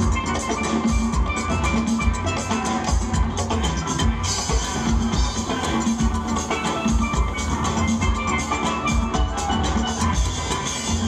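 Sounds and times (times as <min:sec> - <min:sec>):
steel pans playing melody: 0:00.0 - 0:11.0.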